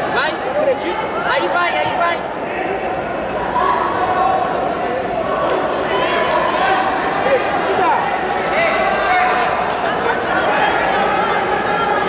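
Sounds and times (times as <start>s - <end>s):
crowd chattering in echoing hall: 0.0s - 12.0s.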